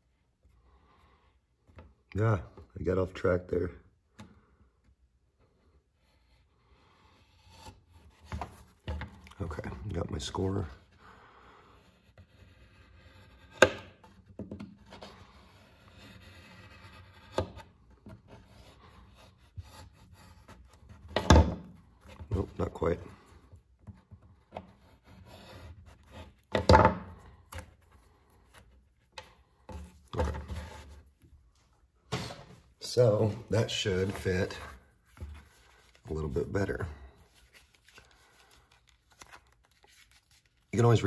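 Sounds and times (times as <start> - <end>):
knife scraping leather: 11.8 - 14.0, 14.8 - 21.1.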